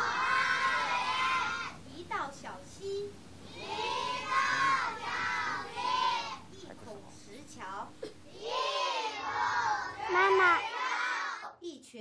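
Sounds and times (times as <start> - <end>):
children reciting in unison: 0.0 - 1.8, 3.4 - 6.5, 8.3 - 11.5.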